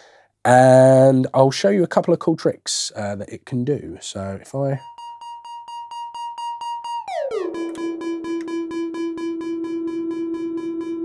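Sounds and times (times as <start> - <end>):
pulsing synthesizer tone: 4.8 - 11.0.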